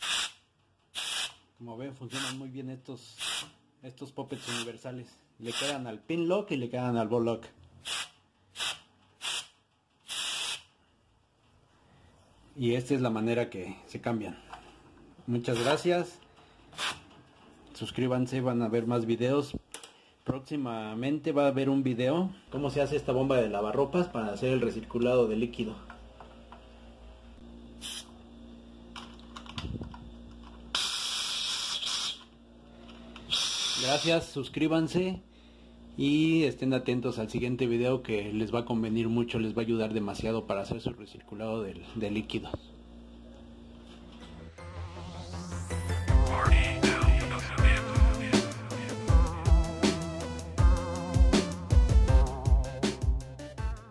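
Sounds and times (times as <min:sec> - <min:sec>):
gas hissing from valve: 0:00.0 - 0:01.4, 0:03.2 - 0:03.6, 0:07.8 - 0:10.7, 0:27.8 - 0:28.2, 0:30.8 - 0:32.3, 0:33.2 - 0:34.2
short puff of gas: 0:33.3 - 0:33.8.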